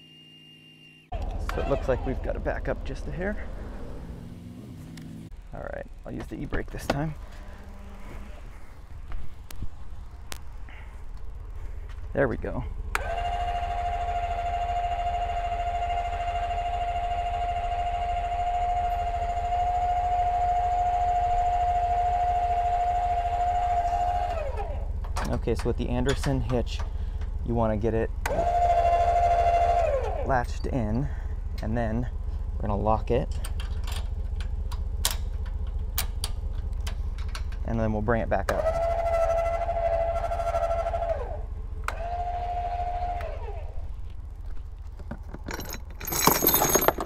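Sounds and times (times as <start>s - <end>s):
electric jack motor whining: 12.9s - 24.9s, 28.2s - 30.2s, 38.5s - 44.0s.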